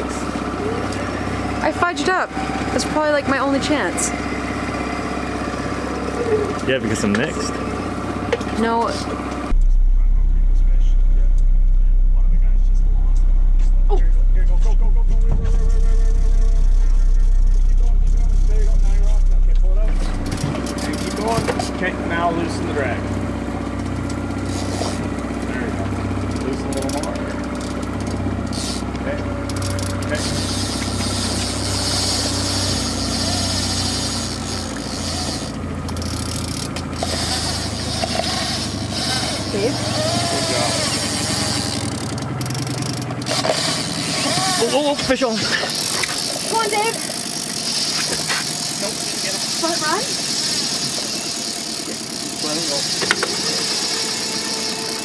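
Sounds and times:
outboard engine running: 0.0 - 55.0.

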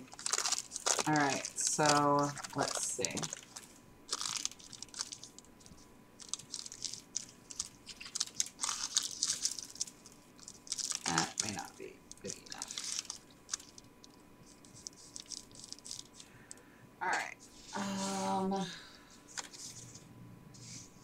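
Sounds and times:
paper liners rustling and crinkling: 0.0 - 16.6, 19.2 - 20.0.

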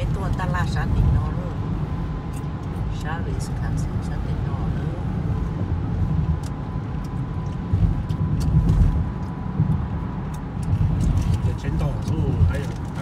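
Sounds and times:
car road noise rumble: 0.0 - 13.0.

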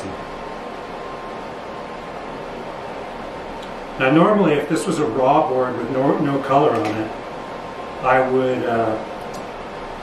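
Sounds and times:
fan hissing: 0.0 - 10.0.

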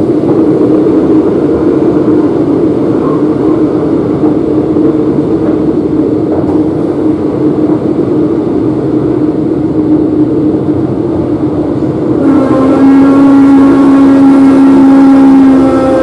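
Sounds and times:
train rumble with humming tone: 0.0 - 16.0
train whine: 0.0 - 16.0.

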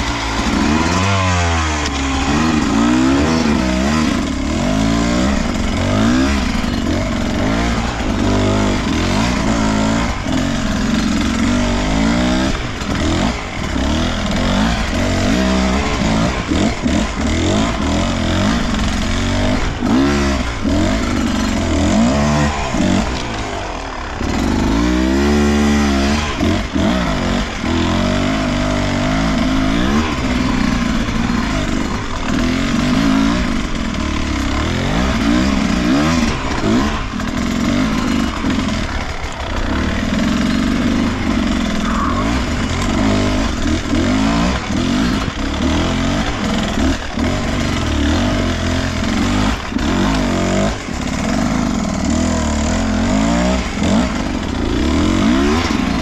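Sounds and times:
two-stroke engine revving: 0.0 - 56.0.

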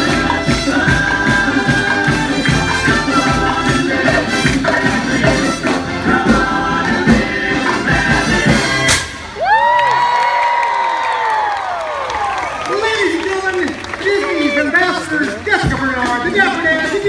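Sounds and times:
brass band playing upbeat music: 0.0 - 9.4, 12.8 - 17.0
crowd cheering and whooping: 9.2 - 15.0
long high whoop: 9.4 - 12.5.

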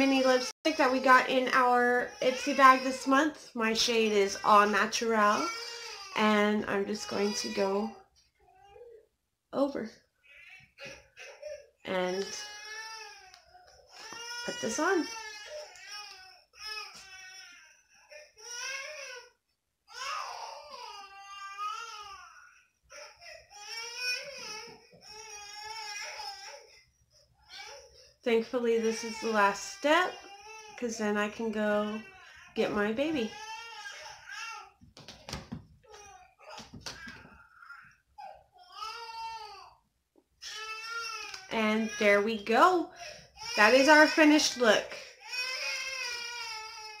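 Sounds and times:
baby crying: 10.2 - 26.8, 33.1 - 34.8, 35.9 - 39.8.

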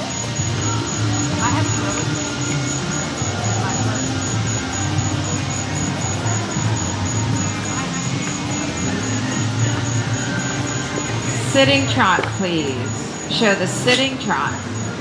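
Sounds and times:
indistinct voices: 0.0 - 15.0
music: 0.0 - 15.0.

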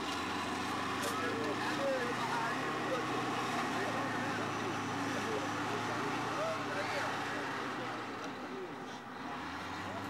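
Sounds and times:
faint voices: 1.0 - 10.0.

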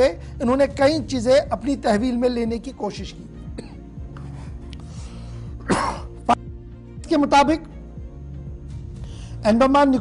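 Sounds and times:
background music: 0.0 - 10.0
person clearing throat: 3.6 - 3.8, 5.6 - 6.3.

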